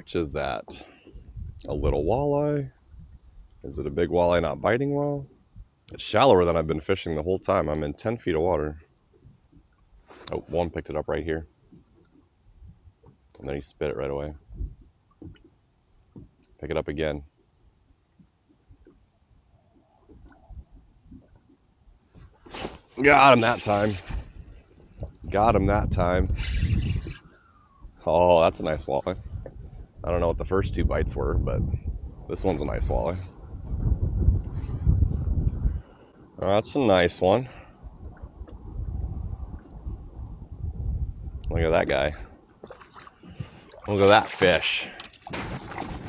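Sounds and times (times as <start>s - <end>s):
faint wind buffeting: 0.0s - 9.6s, 10.2s - 15.4s, 19.8s - 42.5s
choppy water against boat: 17.4s - 29.7s, 42.0s - 46.0s
waves lapping against boat: 42.6s - 46.0s.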